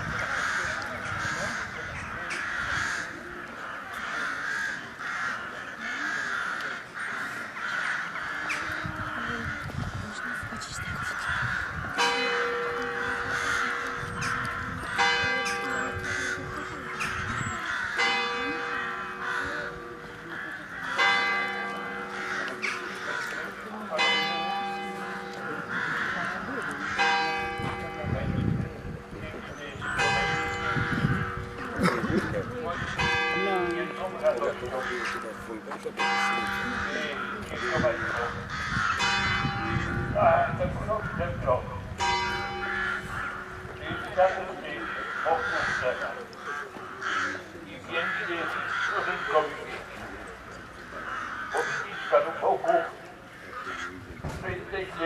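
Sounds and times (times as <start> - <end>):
crowd chatter: 0.0 - 55.0
church bell tolling: 11.9 - 46.2.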